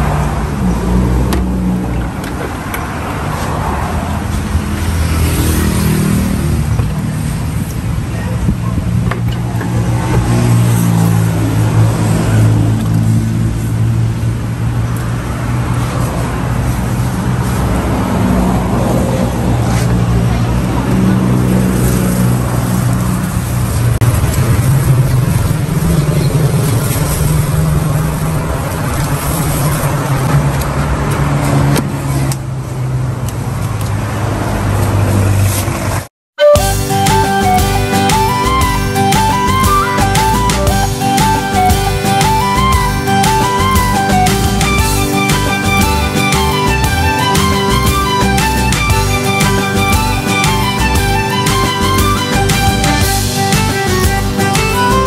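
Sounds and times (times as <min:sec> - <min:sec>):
vehicle engines running: 0:00.0 - 0:55.0.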